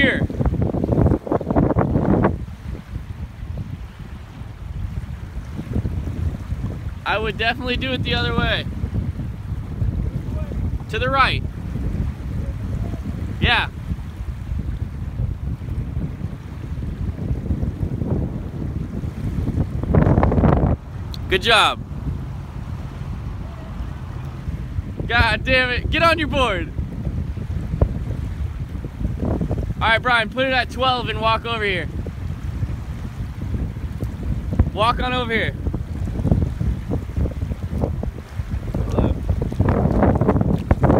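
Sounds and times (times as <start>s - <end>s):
small waves washing onto shore: 0.0s - 40.9s
wind buffeting microphone: 0.0s - 40.9s
heavy low rumble: 19.6s - 27.0s.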